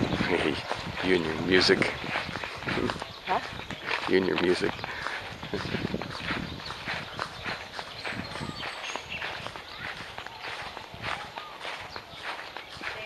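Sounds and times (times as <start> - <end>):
footsteps on grass: 0.0 - 13.0.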